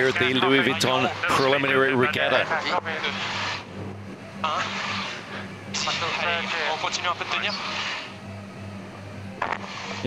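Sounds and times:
quiet background music: 0.0s - 10.0s
steady low hum: 0.0s - 10.0s.

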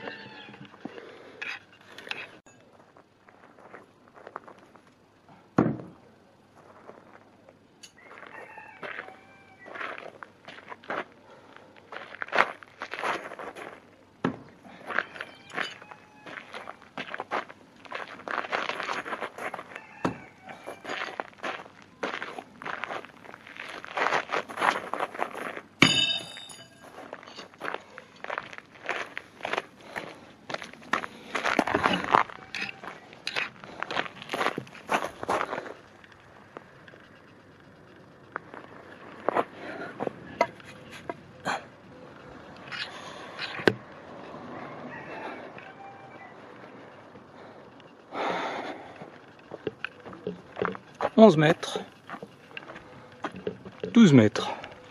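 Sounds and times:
footsteps crunching on gravel: 1.9s - 4.8s, 6.5s - 14.0s, 14.6s - 36.8s, 38.2s - 41.3s, 48.7s - 54.9s
sharp metallic clink: 25.8s - 27.0s.

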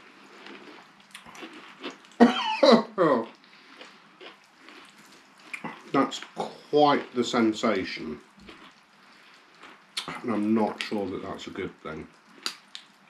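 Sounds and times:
chewing clicks: 0.3s - 2.2s, 3.2s - 7.2s, 8.2s - 13.0s
person coughing or sputtering: 2.2s - 3.3s.

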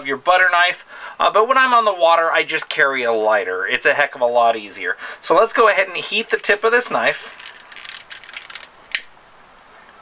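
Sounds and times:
faint handling ticks: 6.1s - 8.7s.

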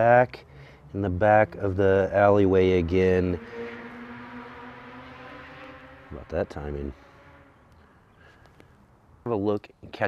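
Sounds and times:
low motor hum: 0.8s - 8.0s.

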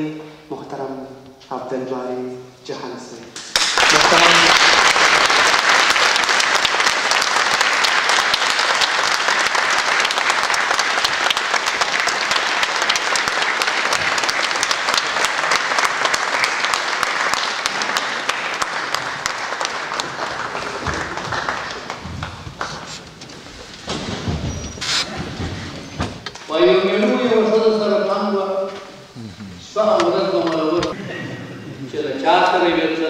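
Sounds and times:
audience applauding: 3.4s - 23.5s.

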